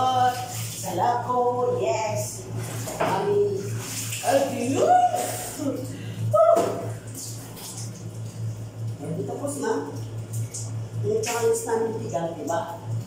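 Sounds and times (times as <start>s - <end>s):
water splashing and pouring: 0.0s - 0.9s, 2.6s - 5.9s, 6.6s - 9.0s
woman speaking: 0.0s - 5.9s, 9.0s - 10.0s, 11.0s - 12.9s
steady low hum: 0.0s - 13.0s.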